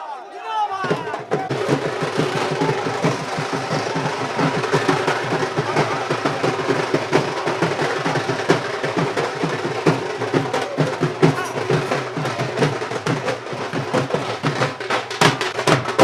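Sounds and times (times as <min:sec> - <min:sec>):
drum band playing fast roll: 0:00.6 - 0:16.0.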